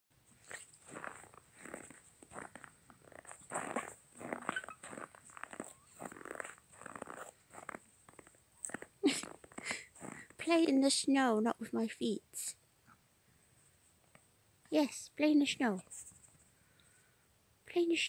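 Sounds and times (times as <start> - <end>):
footsteps crunching in snow: 0.4 - 10.3.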